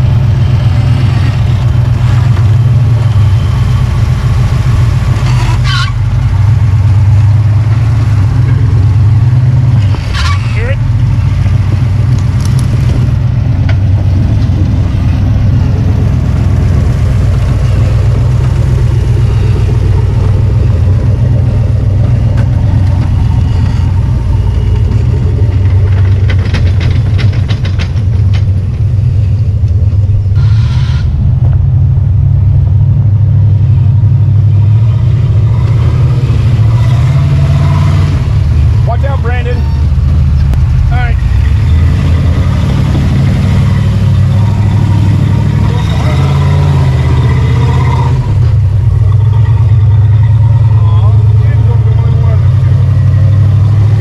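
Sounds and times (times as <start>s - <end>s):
buggy engine revving under load: 0.0s - 54.0s.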